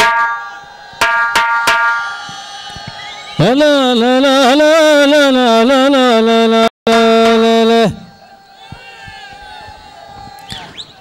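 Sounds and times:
ringing drum strikes: 0.0 - 3.0
man chanting through amplifier: 3.4 - 8.5.

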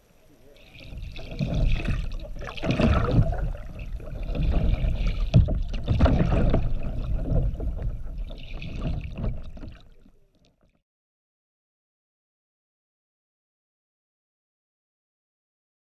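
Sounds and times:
muffled water sloshing and splashing: 0.0 - 10.8.

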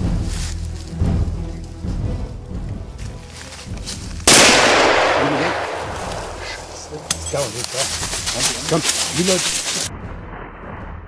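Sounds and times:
rifle shot: 4.2 - 6.8.

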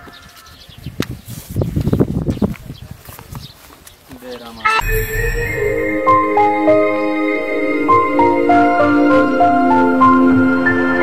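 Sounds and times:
rising electronic sweep: 4.6 - 9.0
sudden hit: 4.7 - 7.3.

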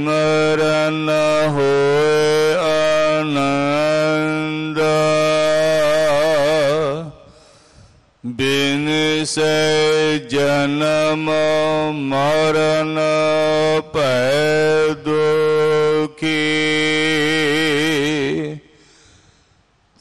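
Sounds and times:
man chanting: 0.0 - 7.4, 8.2 - 18.8.

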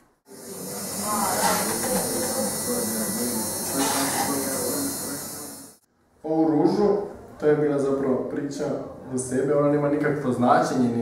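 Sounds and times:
tattoo machine buzzing: 0.3 - 5.9.

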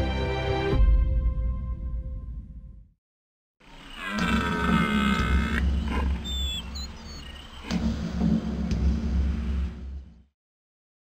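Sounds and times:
high chirps: 4.9 - 7.8.

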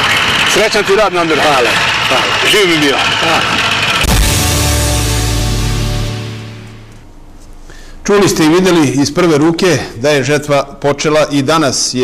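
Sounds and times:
farm machinery engines whining: 0.0 - 7.0
theme music with deep bass: 4.0 - 7.0.

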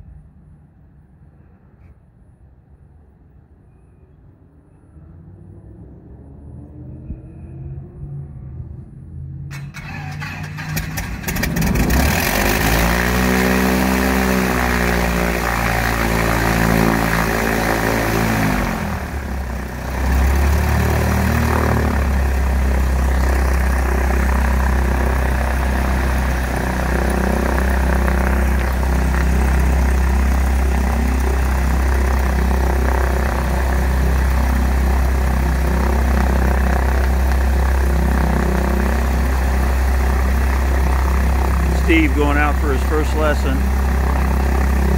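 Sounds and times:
plane engine running: 4.5 - 44.9.

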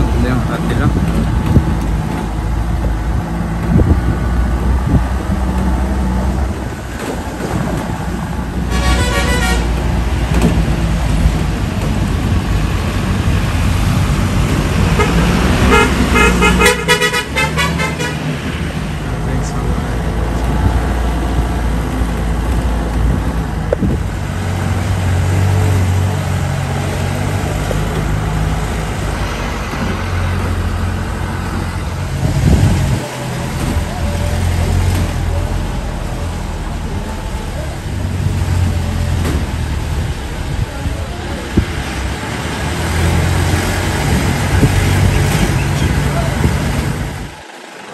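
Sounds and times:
road noise: 0.0 - 47.9
car horn toots: 8.7 - 9.7, 15.0 - 18.2.

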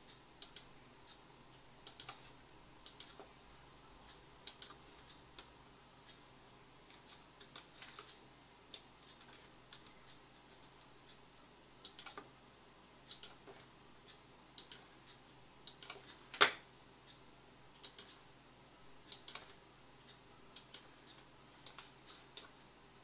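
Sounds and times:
computer mouse clicking: 0.4 - 0.7, 1.8 - 3.3, 4.4 - 5.5, 6.9 - 9.9, 11.8 - 12.3, 13.1 - 13.7, 14.6 - 14.9, 15.6 - 17.2, 17.8 - 18.2, 19.1 - 19.6, 20.5 - 22.6.

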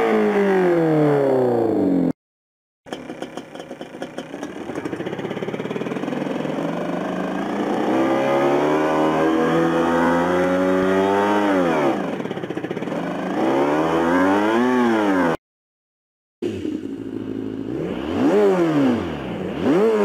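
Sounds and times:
synthetic motorcycle engine revving: 0.0 - 2.1, 2.9 - 15.4, 16.4 - 20.0.

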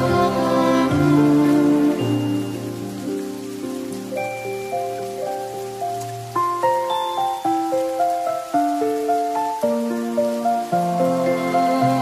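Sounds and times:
gentle piano music: 0.0 - 12.0
rain hissing: 0.0 - 12.0.

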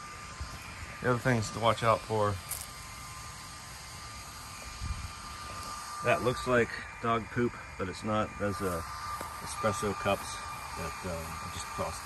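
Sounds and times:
battery-powered fans whirring: 0.0 - 12.0
high motor whine: 0.0 - 12.0.

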